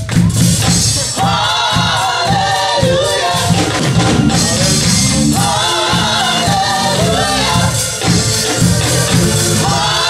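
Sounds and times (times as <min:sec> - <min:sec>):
live band with pulsing bass: 0:00.0 - 0:10.0
women singing gospel together: 0:01.0 - 0:10.0.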